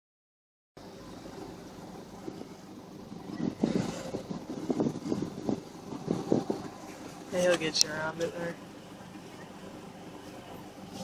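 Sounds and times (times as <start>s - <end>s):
suv engine running under load: 0.8s - 11.0s.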